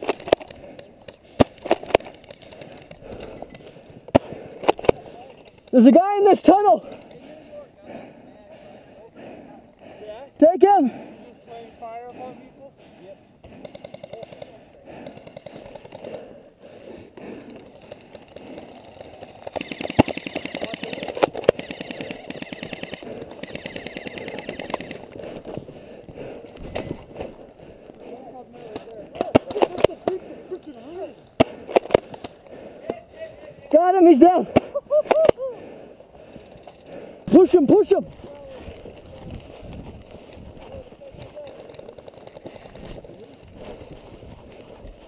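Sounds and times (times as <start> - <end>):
sharp cracks: 17.5 - 25.6, 28.7 - 30.2, 31.1 - 33.0
airsoft rifle full auto fire: 19.4 - 25.0.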